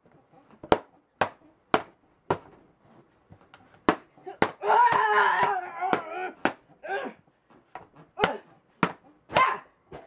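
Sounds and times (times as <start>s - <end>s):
person shouting or yelping: 4.3s - 7.2s, 9.3s - 9.8s.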